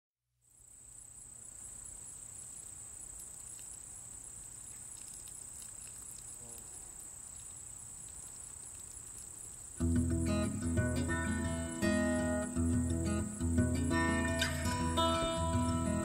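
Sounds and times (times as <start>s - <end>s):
insects chirping: 0.4s - 16.0s.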